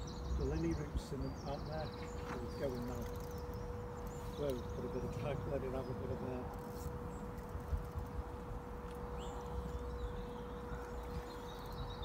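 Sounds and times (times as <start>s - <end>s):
faint steady hum: 0.0s - 12.0s
wind rumble on microphone: 0.0s - 12.0s
high bird chirps: 9.0s - 12.0s.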